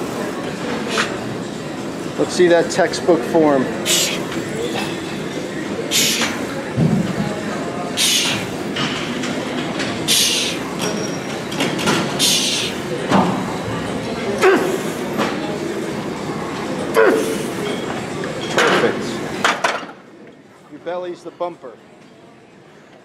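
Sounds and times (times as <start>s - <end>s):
man breathing hard and grunting: 3.8s - 4.3s.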